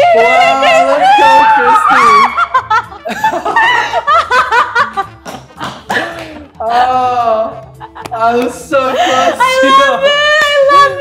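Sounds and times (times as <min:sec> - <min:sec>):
people laughing and shrieking: 0:00.0 - 0:05.1.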